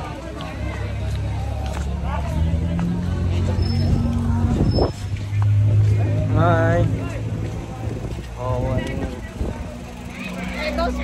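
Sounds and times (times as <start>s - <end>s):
people's voices: 0.0s - 11.0s
vehicle engine hum: 0.0s - 11.0s.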